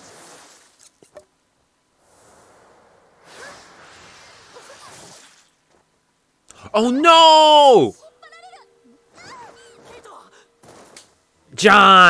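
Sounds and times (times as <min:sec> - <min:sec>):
soft rushing noise: 0:01.9 - 0:05.2.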